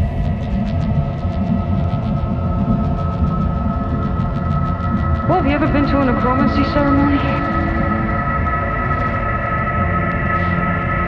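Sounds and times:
distorted bass: 0:00.0 - 0:11.0
droning synth tones: 0:00.0 - 0:11.0.

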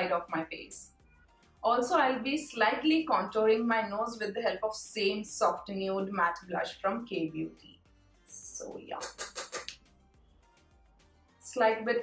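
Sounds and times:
makeup brush scratching powder: 0:08.9 - 0:09.7.

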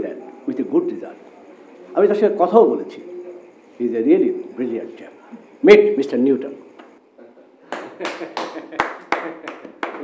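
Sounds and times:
people applauding: 0:07.7 - 0:10.0.

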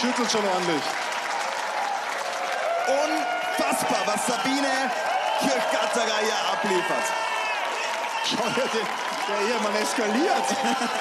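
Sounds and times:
audience applauding: 0:00.0 - 0:11.0
crowd noise: 0:00.0 - 0:11.0.

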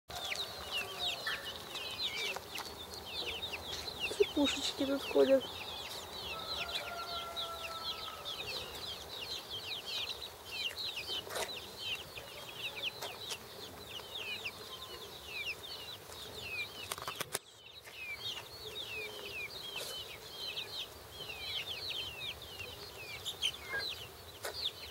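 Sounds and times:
chicks peeping: 0:00.1 - 0:24.9.

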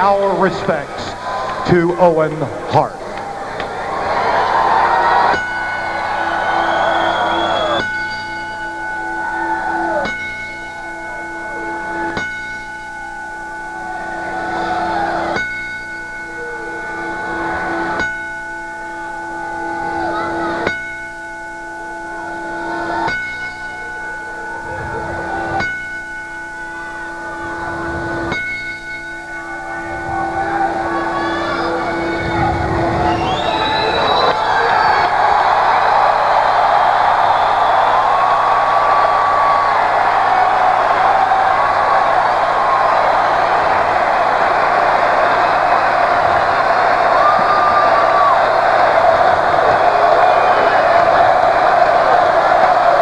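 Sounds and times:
ring bell tolling: 0:05.3 - 0:53.0.

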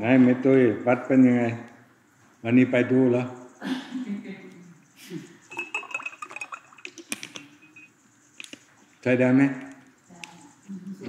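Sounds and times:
bottle and glass clinking: 0:05.4 - 0:07.9
glass ringing tone: 0:05.4 - 0:08.0
water pouring into a glass: 0:05.5 - 0:07.9.

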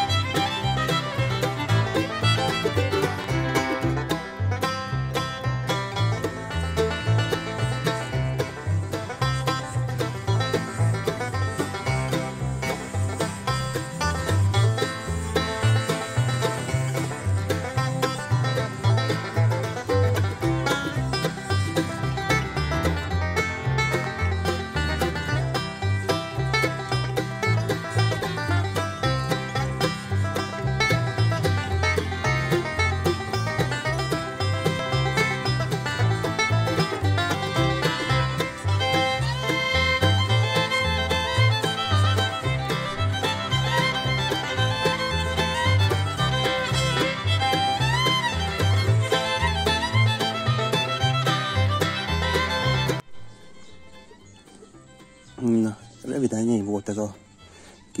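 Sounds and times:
bluegrass music with plucked strings: 0:00.0 - 0:58.0.

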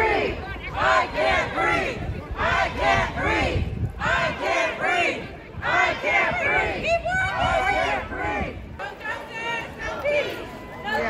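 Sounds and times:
crowd chanting: 0:00.0 - 0:11.0.

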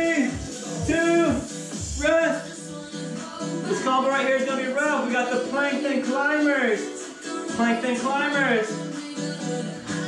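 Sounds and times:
music with vocals over a beat: 0:00.0 - 0:10.0.

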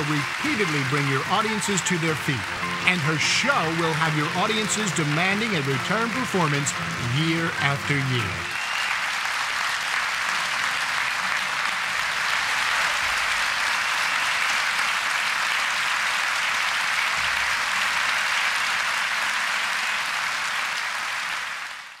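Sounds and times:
audience applauding: 0:00.0 - 0:22.0.

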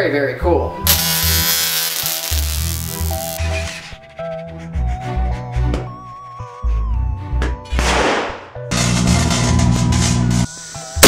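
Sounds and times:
harsh electric buzz: 0:00.9 - 0:03.4.

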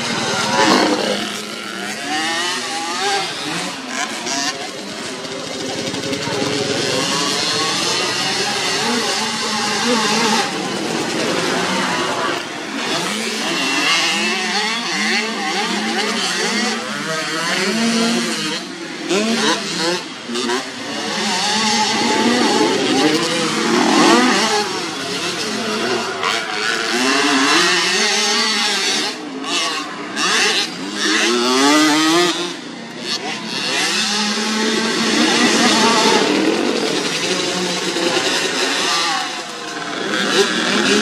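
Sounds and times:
motocross bike engines revving: 0:00.0 - 0:41.0.

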